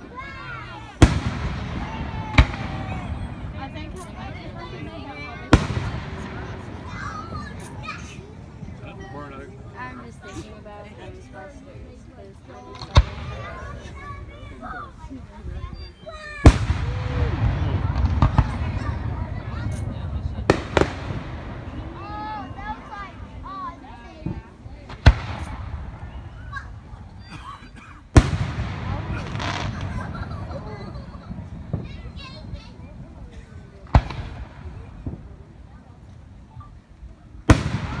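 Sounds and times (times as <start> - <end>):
small firework cracks: 0.6 - 8.9, 12.7 - 14.3, 16.4 - 27.2, 28.1 - 32.8, 33.8 - 36.2, 37.5 - 38.0
firework shells bursting: 1.0 - 8.8, 16.5 - 23.3, 28.1 - 32.4, 33.8 - 35.3.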